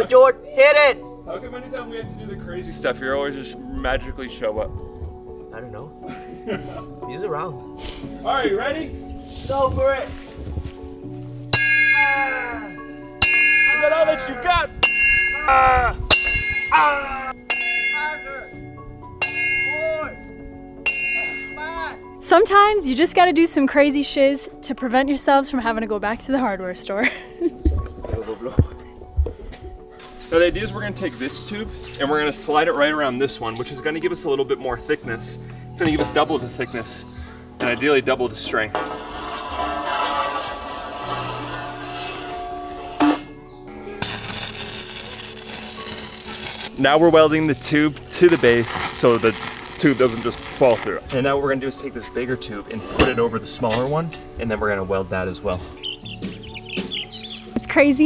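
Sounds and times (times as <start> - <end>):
background music: 0.0 - 58.0
metal ringing bell-like: 11.5 - 22.2
sledgehammer striking steel: 13.2 - 14.2, 19.2 - 20.1, 20.8 - 21.6
welding arc hissing: 44.0 - 46.8, 47.9 - 50.9.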